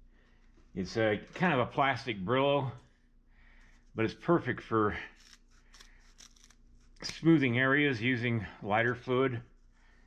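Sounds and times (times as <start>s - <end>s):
scissors cutting scouring pad: 5.1s - 7.4s.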